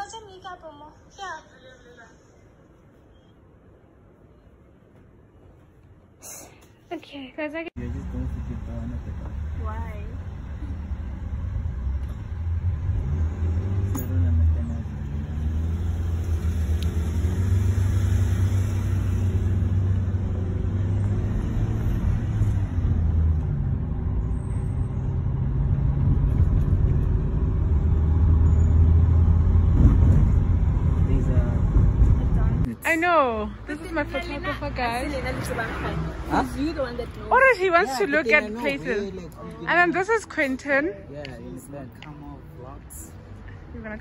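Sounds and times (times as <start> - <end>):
car engine and tyres rumble: 7.8 - 32.8.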